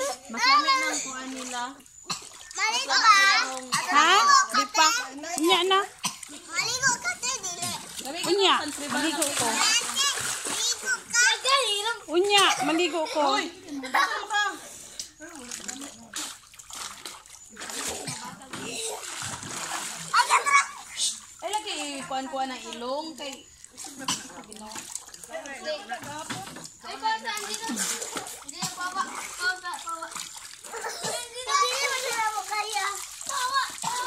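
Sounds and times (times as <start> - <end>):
water splashing in pool: 0.0 - 34.0
child talking loudly: 6.5 - 7.9, 20.1 - 20.8, 30.8 - 34.0.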